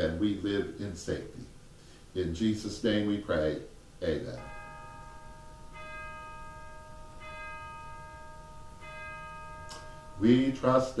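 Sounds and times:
bell strokes ringing: 4.2s - 11.0s.

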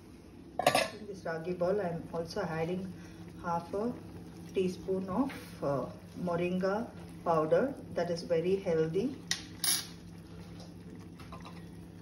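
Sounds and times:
water bubbling in a pot: 0.2s - 12.0s.

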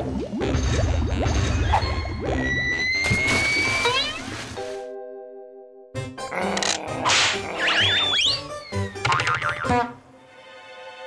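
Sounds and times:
background music: 0.0s - 11.0s
cartoon boing: 9.0s - 9.8s.

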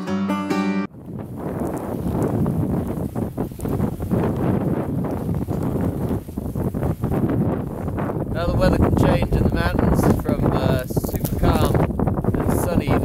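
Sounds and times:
gusty wind buffeting microphone: 0.9s - 13.0s.

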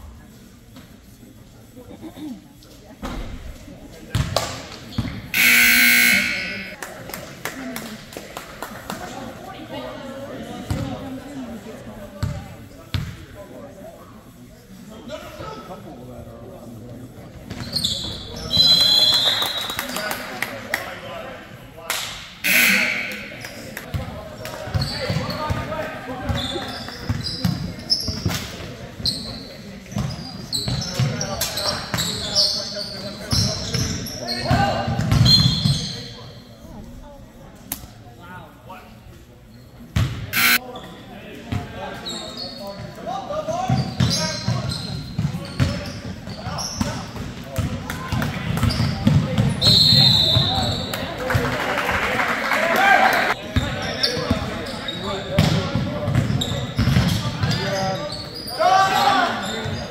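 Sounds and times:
sneakers squeaking: 4.1s - 6.8s, 10.6s - 11.4s, 12.1s - 13.2s, 17.3s - 19.8s, 22.4s - 36.6s, 39.5s - 47.8s, 48.4s - 51.2s, 53.5s - 59.9s
people calling out: 5.4s - 6.8s, 22.4s - 23.4s.

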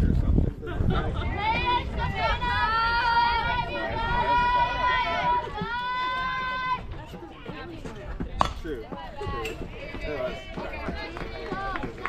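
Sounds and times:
people shouting and cheering: 1.1s - 7.9s, 8.9s - 12.0s
bat striking ball: 8.4s - 8.6s.

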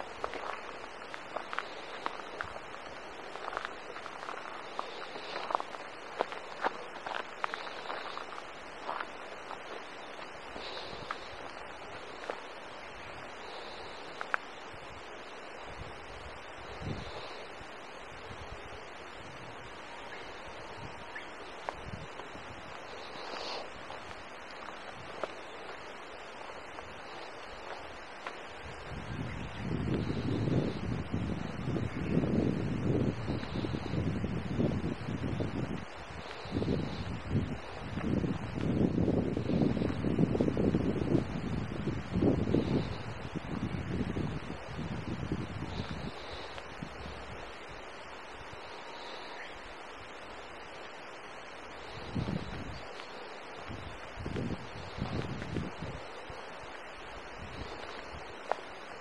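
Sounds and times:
wind gusting on microphone: 0.0s - 59.0s.

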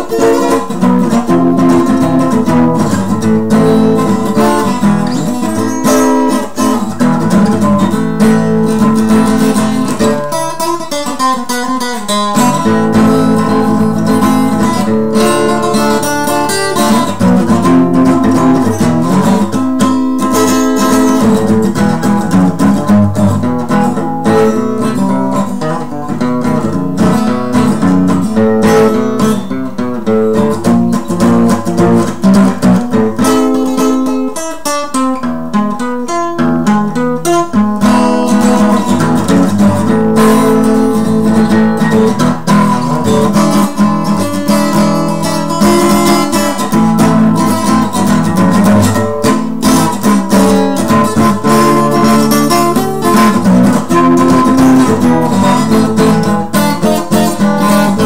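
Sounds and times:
acoustic guitar strummed: 0.0s - 58.0s.

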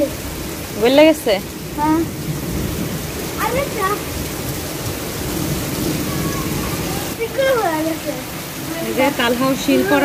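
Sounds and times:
heavy rain on paving: 0.0s - 10.0s.

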